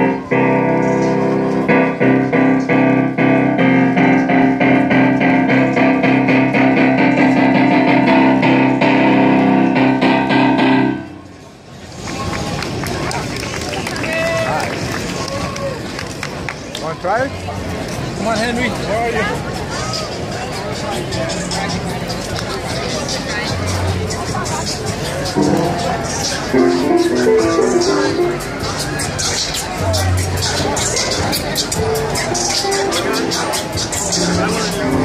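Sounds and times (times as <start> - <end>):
electric keyboard chords: 0.0 - 11.4, 25.2 - 35.0
outdoor crowd chatter: 0.0 - 35.0.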